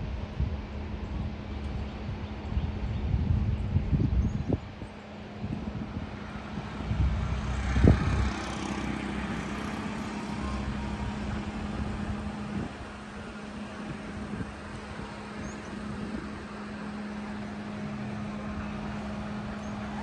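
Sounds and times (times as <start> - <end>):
low hum: 0.0 - 20.0
wind rumbling on microphone: 0.0 - 20.0
vehicle passing: 5.4 - 20.0.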